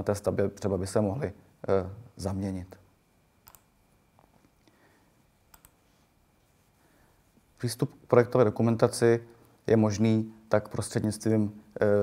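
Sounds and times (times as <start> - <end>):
faint computer mouse clicks: 3.4 - 3.7, 5.5 - 5.8.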